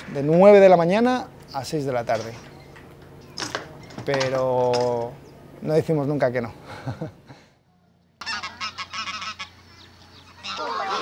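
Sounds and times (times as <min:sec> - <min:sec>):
geese honking: 0:08.2 - 0:11.0.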